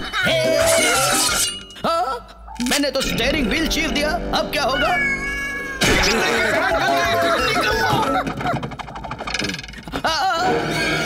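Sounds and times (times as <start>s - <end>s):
cartoon music: 4.0s - 8.3s.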